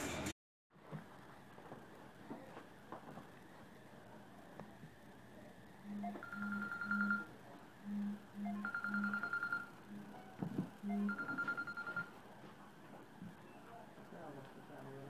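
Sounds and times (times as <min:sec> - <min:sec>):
telephone ringtone beeps and trill: 0:05.9 - 0:07.3, 0:07.9 - 0:12.1.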